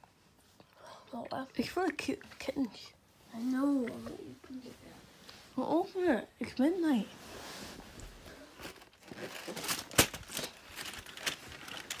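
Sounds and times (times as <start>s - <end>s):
cardboard crinkling and tearing: 8.6s - 12.0s.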